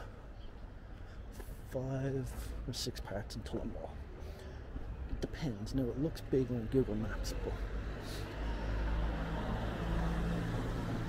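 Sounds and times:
vehicle engine humming: 0:05.9 - 0:11.0.

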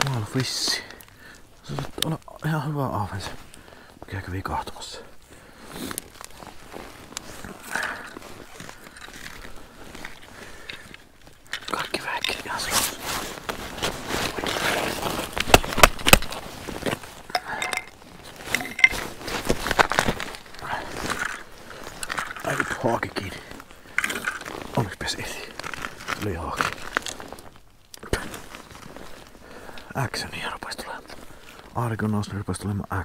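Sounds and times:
clicks knocks and crunches of gear: 0:06.0 - 0:23.2, 0:23.9 - 0:28.7.

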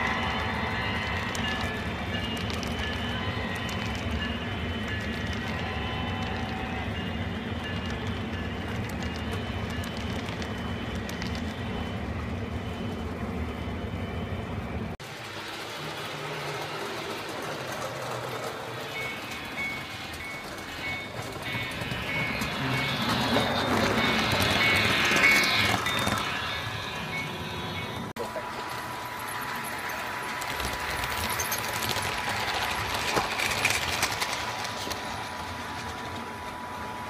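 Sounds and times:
model freight cars rolling on track: 0:00.0 - 0:14.2, 0:14.8 - 0:37.0
model locomotive sound: 0:00.0 - 0:37.0.

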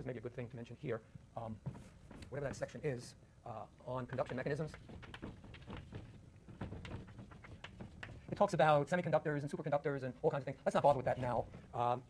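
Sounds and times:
faint scattered clicks and rustles: 0:01.4 - 0:03.1, 0:03.8 - 0:09.6.

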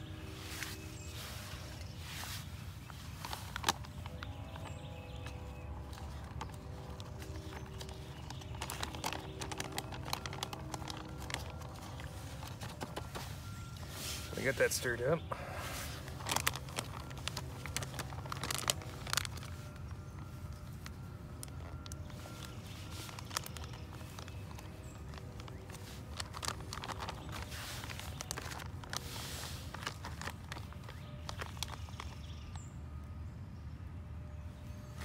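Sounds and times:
food pouch crinkling: 0:00.1 - 0:32.5.

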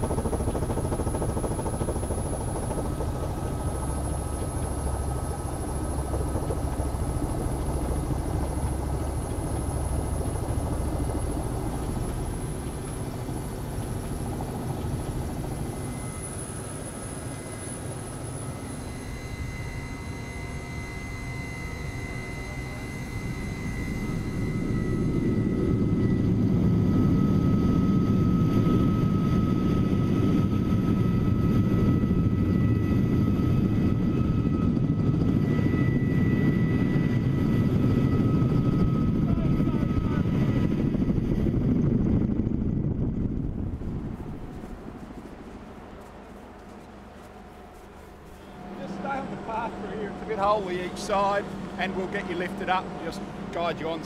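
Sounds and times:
helicopter rotor and engine: 0:00.0 - 0:54.0
high turbine whine: 0:00.0 - 0:54.0.

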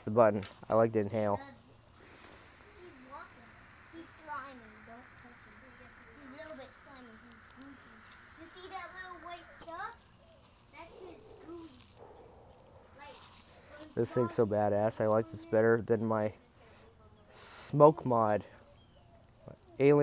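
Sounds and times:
faint high hiss: 0:00.0 - 0:12.0.

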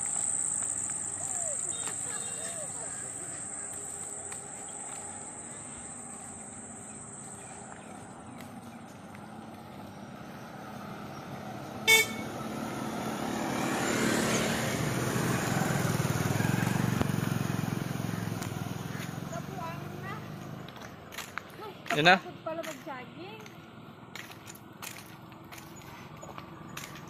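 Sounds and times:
motor vehicle passing: 0:00.0 - 0:27.0
vehicle horn toot: 0:11.8 - 0:12.4.

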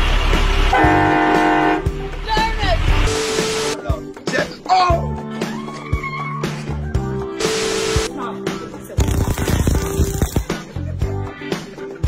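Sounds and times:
background music: 0:00.2 - 0:12.0
horn blast: 0:00.6 - 0:02.0.

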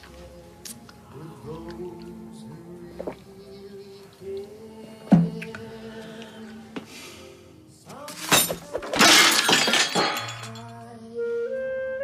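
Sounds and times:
background music: 0:00.0 - 0:12.0
something smashing: 0:08.1 - 0:10.7.

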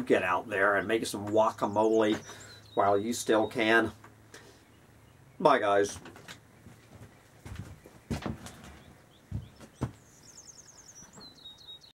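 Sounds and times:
dull knocks and thumps: 0:05.9 - 0:10.0.

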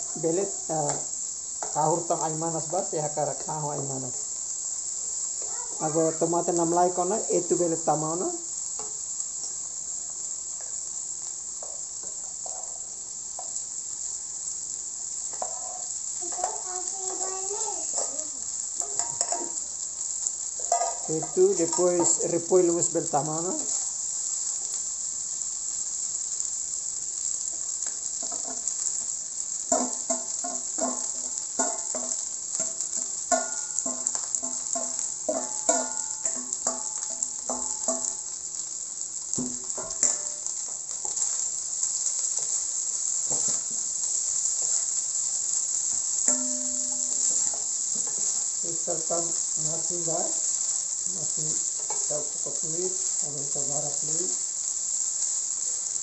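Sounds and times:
rice sizzling in a wok: 0:00.0 - 0:56.0
spatula scraping and knocking pan: 0:08.8 - 0:10.8, 0:11.6 - 0:13.6, 0:15.2 - 0:17.3, 0:17.9 - 0:19.6, 0:20.6 - 0:23.8, 0:27.5 - 0:38.3, 0:39.3 - 0:45.0, 0:45.8 - 0:50.8, 0:51.6 - 0:52.6.

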